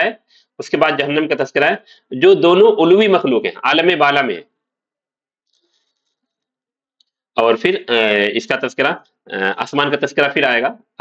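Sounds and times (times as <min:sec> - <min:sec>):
person speaking: 0:00.0 - 0:04.4, 0:07.4 - 0:10.8.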